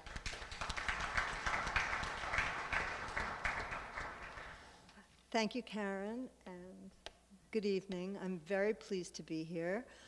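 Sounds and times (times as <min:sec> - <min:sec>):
audience applauding: 0:00.0 - 0:04.7.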